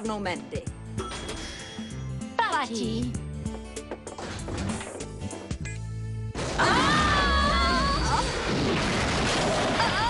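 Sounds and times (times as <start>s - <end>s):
girl screaming: 6.6s - 8.4s.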